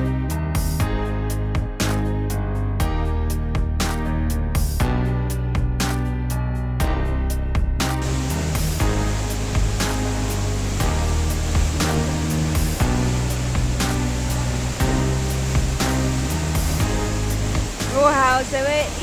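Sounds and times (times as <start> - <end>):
background music with steady beat: 0.0 - 19.0
waterfall rushing: 8.0 - 19.0.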